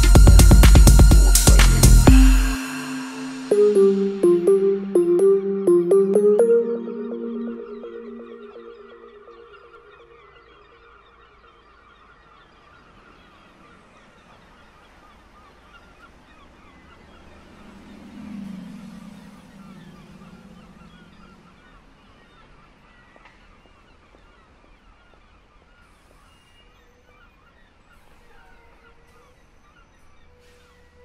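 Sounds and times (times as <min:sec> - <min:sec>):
flock of birds calling: 0:11.4 - 0:31.0.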